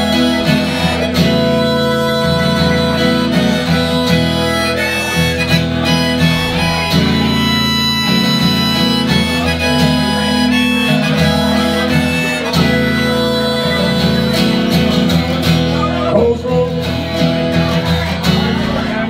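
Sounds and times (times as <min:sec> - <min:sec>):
harmonica playing long notes: 0:00.0 - 0:17.2
strummed acoustic guitar: 0:00.0 - 0:19.0.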